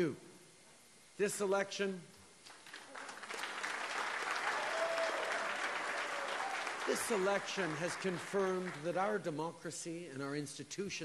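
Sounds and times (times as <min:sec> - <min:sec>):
crowd applauding: 0:02.4 - 0:09.2.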